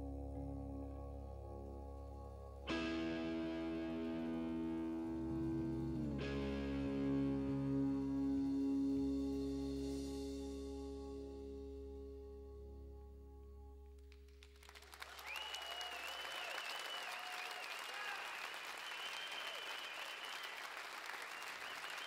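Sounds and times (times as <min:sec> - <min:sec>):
band playing organ chords: 0:00.0 - 0:13.8.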